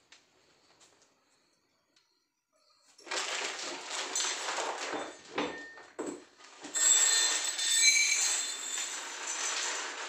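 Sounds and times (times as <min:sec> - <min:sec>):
plastic bag crinkling: 0:03.0 - 0:05.3.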